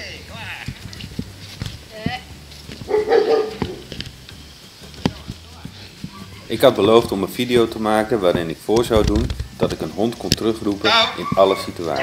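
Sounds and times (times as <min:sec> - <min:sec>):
dog barking: 0:02.8 - 0:03.8, 0:11.0 - 0:12.0.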